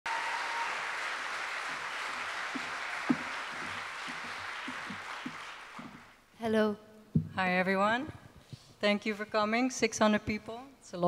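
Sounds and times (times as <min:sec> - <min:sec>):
large audience applauding: 0:00.0 - 0:06.2
loud knock: 0:02.6 - 0:06.0.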